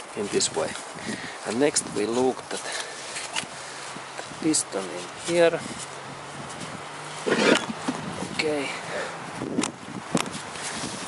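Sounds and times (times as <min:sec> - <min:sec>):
engine block scraping on plywood: 0:07.2 - 0:08.0.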